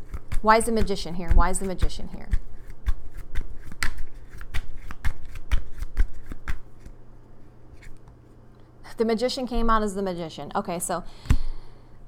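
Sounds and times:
cards being shuffled: 0.0s - 7.0s, 7.7s - 8.2s.

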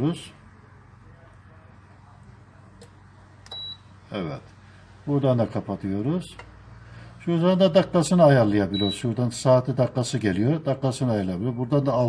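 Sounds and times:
short high beep: 3.5s - 3.9s.

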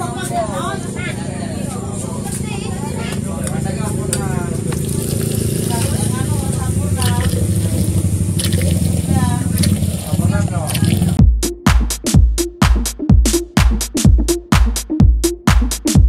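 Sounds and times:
steady low hum: 2.8s - 11.2s
electronic dance music: 10.2s - 16.0s.

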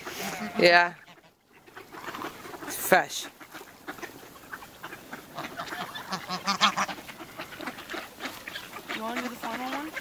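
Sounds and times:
ducks quacking: 0.0s - 10.0s.

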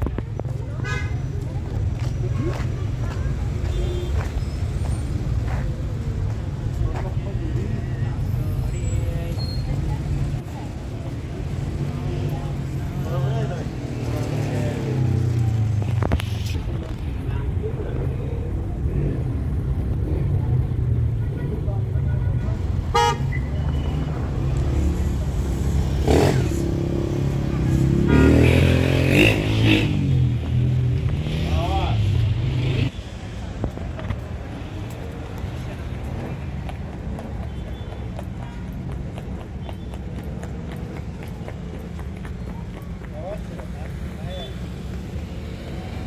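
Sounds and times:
traffic rumble: 0.0s - 46.0s
voices of passers-by: 0.0s - 46.0s
car horns tooting: 22.1s - 24.1s, 28.1s - 28.7s.

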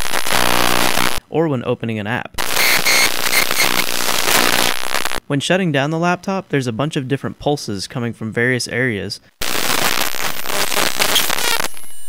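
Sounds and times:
loud crackling electrical buzz: 0.0s - 1.2s, 2.4s - 5.2s, 9.4s - 11.9s.

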